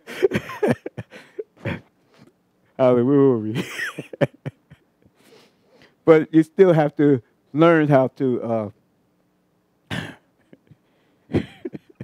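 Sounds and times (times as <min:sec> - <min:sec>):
man coughing: 0:00.0 - 0:01.9, 0:09.9 - 0:10.6, 0:11.3 - 0:12.0.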